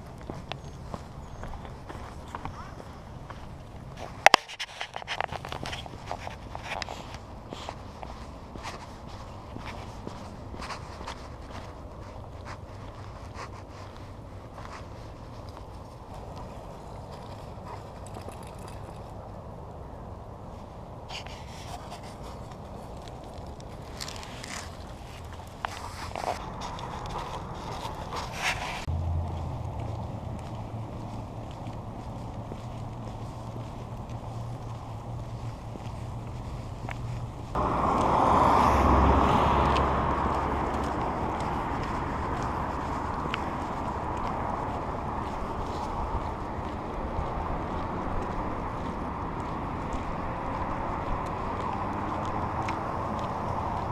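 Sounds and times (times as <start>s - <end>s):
footsteps and paws on pavement: 0.0s - 53.9s
low hum of road traffic: 0.0s - 53.9s
loud rush of noise: 37.6s - 41.4s.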